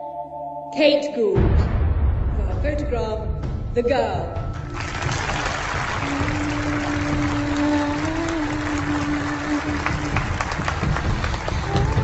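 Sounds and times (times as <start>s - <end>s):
music with long held notes: 3.9s - 12.0s
audience applauding: 4.5s - 12.0s.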